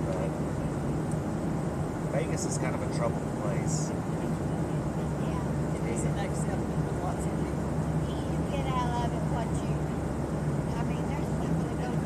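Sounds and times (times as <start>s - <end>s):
airliner cabin drone: 0.0s - 12.0s.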